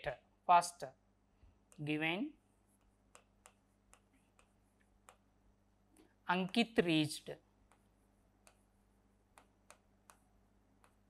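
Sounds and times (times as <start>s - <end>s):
pen tip tapping on touchscreen: 2.8s - 5.3s, 9.3s - 11.0s.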